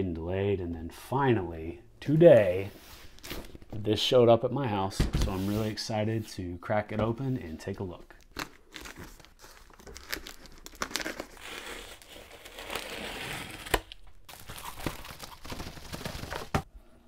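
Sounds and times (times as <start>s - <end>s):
packing tape tearing: 8.2s - 16.7s.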